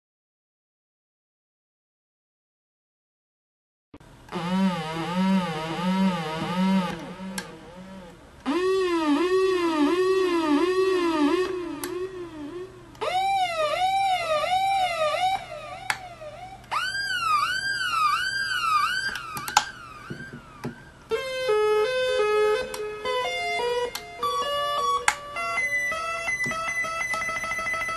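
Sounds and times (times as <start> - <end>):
dub siren swooping tone: 4.3 - 15.7.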